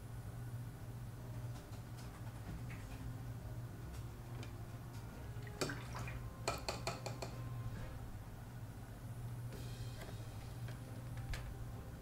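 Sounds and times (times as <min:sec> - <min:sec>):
low steady hum: 0:00.0 - 0:12.0
paintbrush tapping glass jar: 0:06.5 - 0:07.4.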